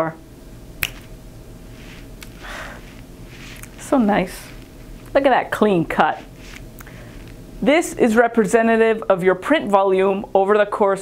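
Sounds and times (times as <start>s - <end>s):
sharp click: 0.8s - 1.1s.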